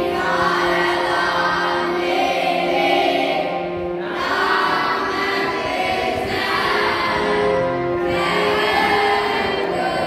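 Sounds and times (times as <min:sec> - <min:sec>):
group singing a chant: 0:00.0 - 0:10.0.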